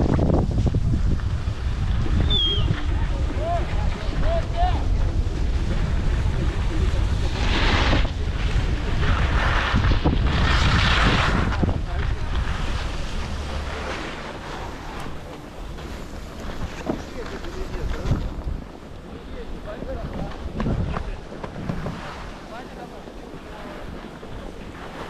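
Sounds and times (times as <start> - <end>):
skis scraping on packed snow: 0.0 - 25.0
wind buffeting microphone: 0.0 - 25.0.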